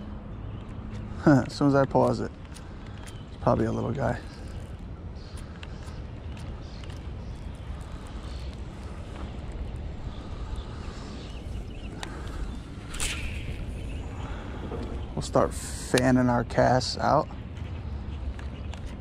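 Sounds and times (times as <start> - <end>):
low outdoor rumble: 0.0 - 19.0
sharp click: 12.9 - 13.7.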